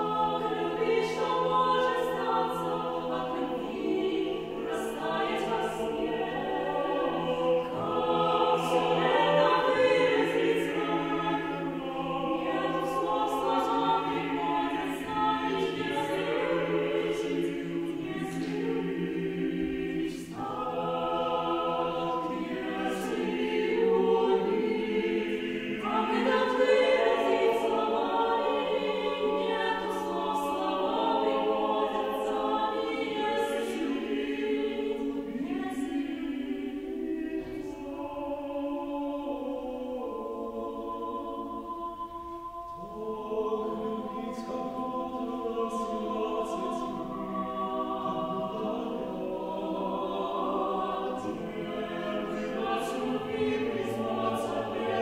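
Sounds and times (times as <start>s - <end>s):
choir singing a cappella: 0.0s - 55.0s.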